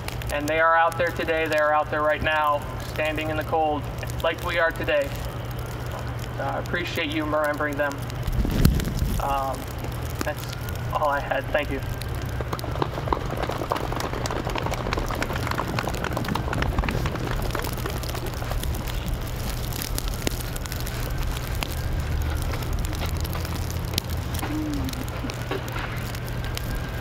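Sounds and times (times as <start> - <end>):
low steady rumble: 0.0 - 27.0
snow pattering on tent: 0.0 - 27.0.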